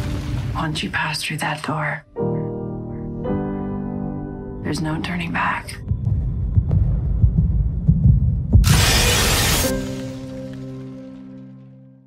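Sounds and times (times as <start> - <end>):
pulsing bass throbs: 5.8 - 9.6.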